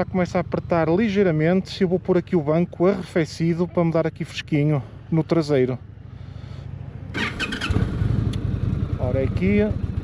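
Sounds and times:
motorcycle engine idling: 0.0s - 10.0s
engine cranking whirr: 7.1s - 8.7s.

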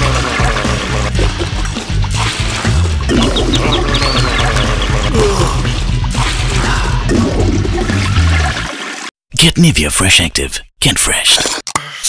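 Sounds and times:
toilet flushing: 0.0s - 3.3s, 6.1s - 9.2s.

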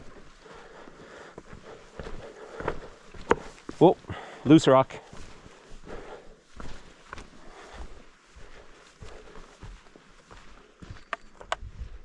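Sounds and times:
footsteps on rocky trail: 0.0s - 12.0s
loose rock shifting underfoot: 2.5s - 4.3s.

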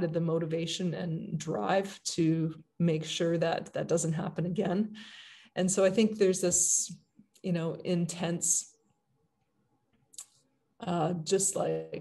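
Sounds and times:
woman speaking: 0.0s - 8.7s, 10.8s - 12.0s.

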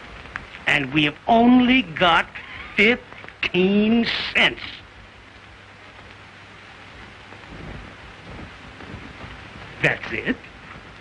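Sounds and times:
film soundtrack hiss and crackle: 0.0s - 11.0s
faint low bumps: 4.8s - 11.0s.

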